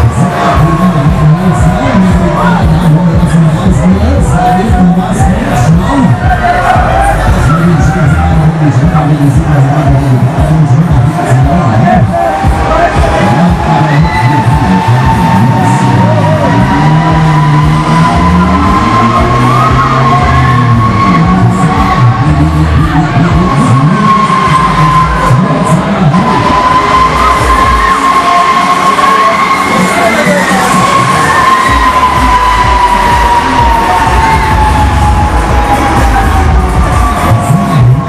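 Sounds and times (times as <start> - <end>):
loud fairground ride music: 0.0 - 38.0
ride machinery whine: 0.0 - 38.0
riders cheering and shouting: 0.0 - 38.0.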